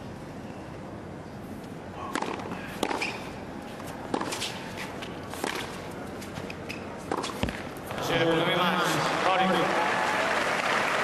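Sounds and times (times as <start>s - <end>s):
tennis ball hit by racket: 2.1s - 3.3s, 4.0s - 5.8s, 7.0s - 7.7s.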